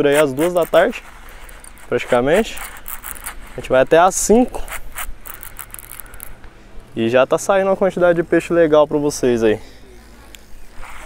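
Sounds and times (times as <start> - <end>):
fishing reel clicks: 0.0 - 3.6, 4.5 - 6.4.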